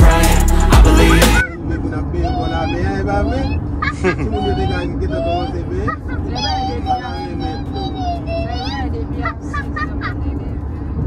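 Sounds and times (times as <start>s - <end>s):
road noise hum: 0.0s - 11.0s.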